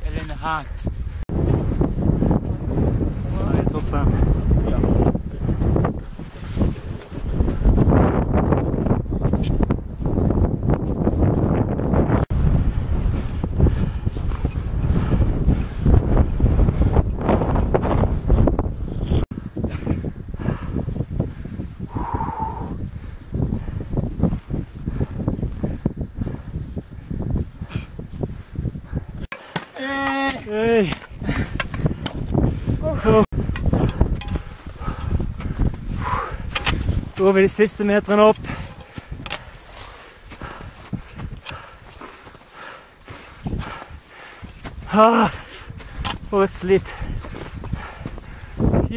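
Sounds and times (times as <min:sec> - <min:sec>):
wind rumbling on microphone: 0:00.0 - 0:29.3, 0:30.4 - 0:48.9
footsteps crunching in snow: 0:38.4 - 0:48.5.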